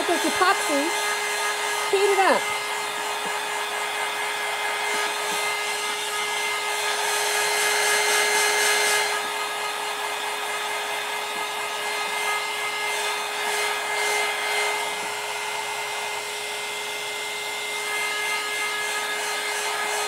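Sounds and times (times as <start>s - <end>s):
heat gun blowing air: 0.0s - 20.0s.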